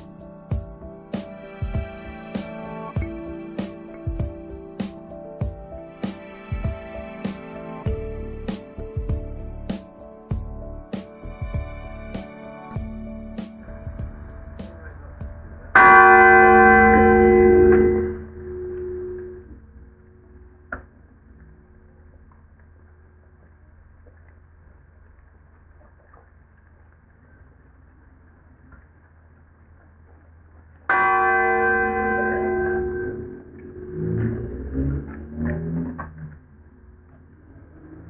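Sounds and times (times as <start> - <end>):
uneven low sounds: 0.0 - 24.2, 30.9 - 38.0
church bell tolling: 15.7 - 19.4, 30.9 - 33.8.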